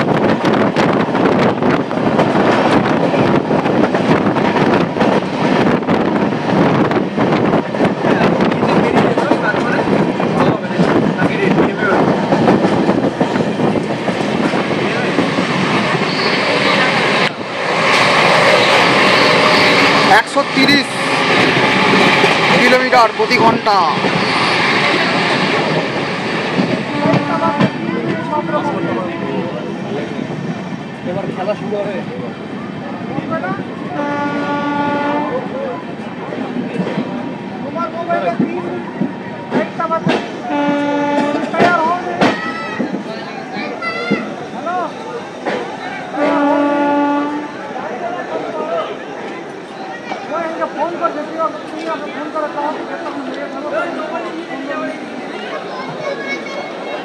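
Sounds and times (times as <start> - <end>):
train clattering along platform: 0.0 - 57.0
train horn blasts: 26.9 - 27.8, 34.0 - 35.4, 40.5 - 41.5, 46.2 - 47.6.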